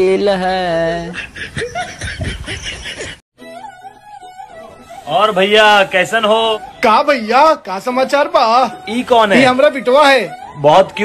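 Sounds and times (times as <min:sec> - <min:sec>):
person chuckling: 0:01.1 - 0:03.2.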